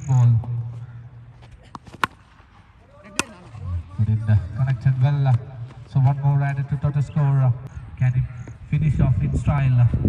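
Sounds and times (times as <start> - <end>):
quiet outdoor background: 0.0 - 10.0.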